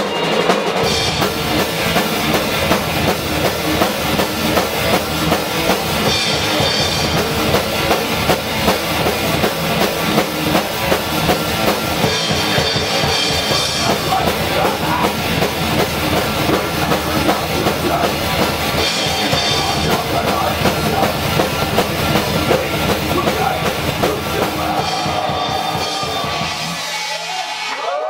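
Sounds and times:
bass drum and cymbals beat: 0.0 - 27.8
rock band playing loud: 0.0 - 28.0.

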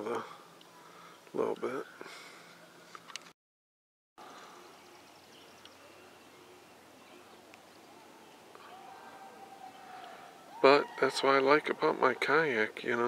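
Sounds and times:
distant bird chirps: 4.2 - 11.8
faint outdoor ambience over water: 4.2 - 13.0.

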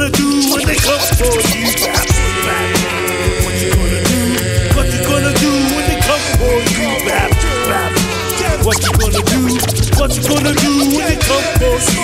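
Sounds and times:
hip hop beat with bass and drums: 0.0 - 12.0
turntable scratches: 0.1 - 2.2, 8.4 - 12.0.

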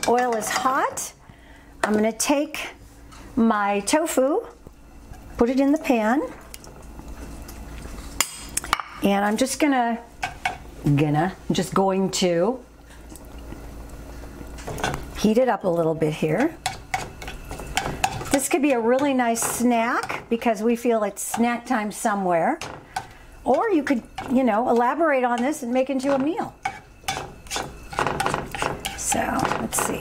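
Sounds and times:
spatula scraping a frying pan: 16.4 - 20.3, 22.6 - 30.0.

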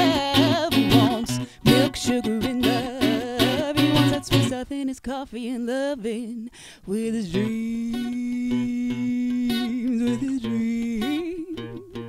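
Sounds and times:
acoustic guitar: 0.0 - 12.0
woman singing: 0.0 - 12.0.

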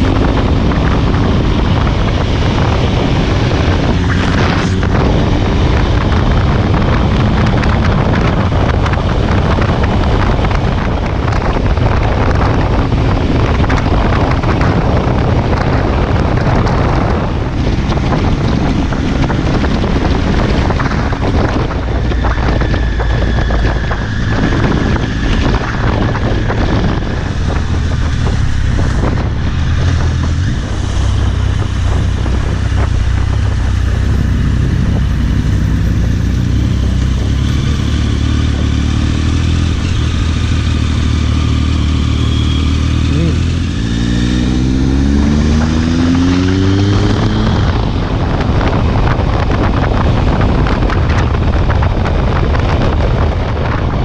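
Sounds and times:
motorcycle engine running: 0.0 - 54.0
wind noise: 0.0 - 54.0.

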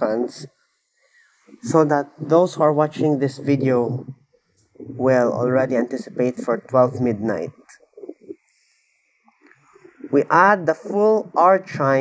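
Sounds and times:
man speaking: 0.0 - 0.5, 1.6 - 4.1, 4.8 - 8.4, 9.9 - 12.0
faint breath: 0.9 - 1.6, 8.1 - 10.2.

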